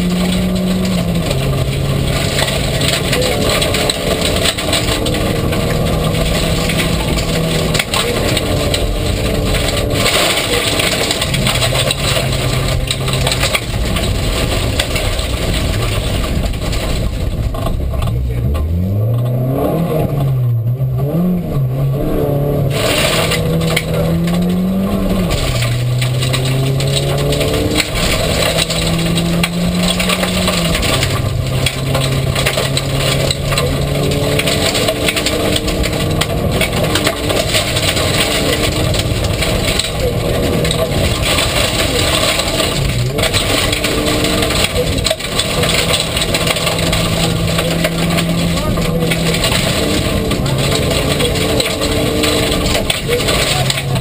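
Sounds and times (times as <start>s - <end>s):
gravel and road noise: 0.0s - 54.0s
rally car engine revving: 0.0s - 54.0s.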